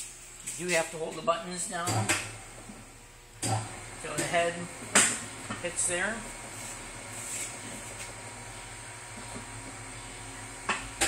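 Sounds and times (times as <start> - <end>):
dough machine humming: 0.0 - 11.0.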